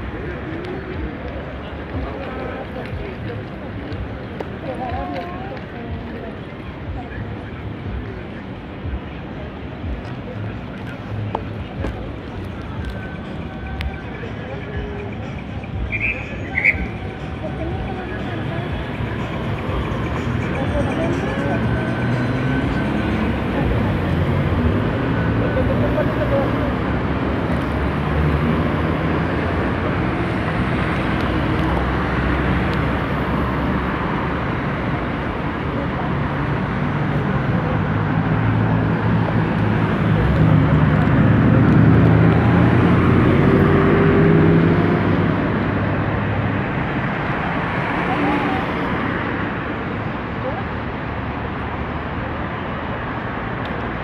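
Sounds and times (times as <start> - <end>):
car engines passing: 0.0 - 54.0.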